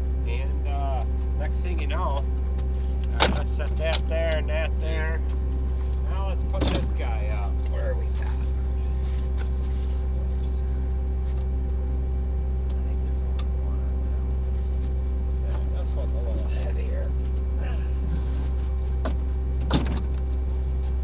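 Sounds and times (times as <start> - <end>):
engine droning: 0.0 - 21.0
voices: 0.3 - 2.3, 3.0 - 5.3, 6.0 - 10.9, 15.4 - 18.3
small metallic clank: 6.6 - 7.0.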